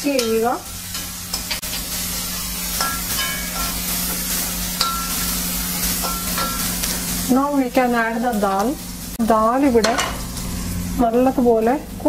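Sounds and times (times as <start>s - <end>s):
sauce sizzling in oil: 0.0s - 12.0s
metal spatula scraping pan: 0.1s - 7.1s.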